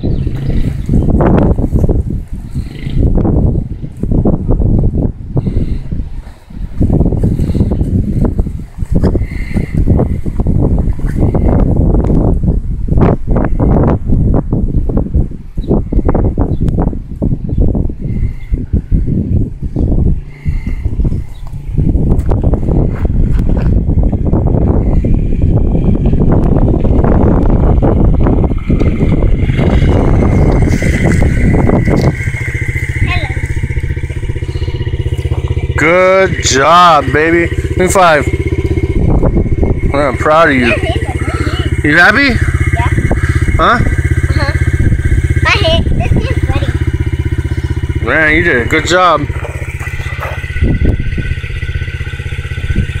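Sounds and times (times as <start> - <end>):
engine idling: 0.0 - 12.6, 18.0 - 53.0
dirt bike engine running: 0.0 - 53.0.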